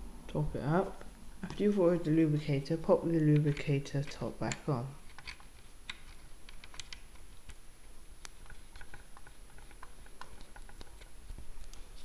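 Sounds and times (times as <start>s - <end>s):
small metal parts clicking: 3.4s - 7.0s.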